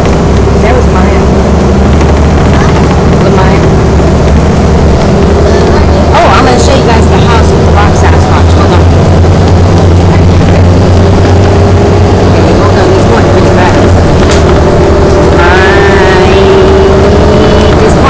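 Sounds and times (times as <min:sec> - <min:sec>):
bus engine low drone: 0:00.0 - 0:18.0.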